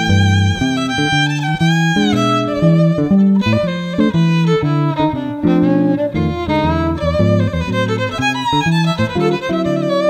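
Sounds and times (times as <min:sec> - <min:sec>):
guitar chords: 0:00.0 - 0:10.0
violin playing swing melody: 0:00.0 - 0:10.0.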